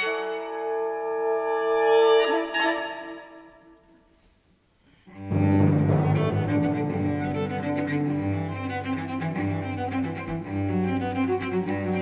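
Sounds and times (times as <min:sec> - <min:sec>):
orchestral brass chord: 0:05.3 - 0:07.6.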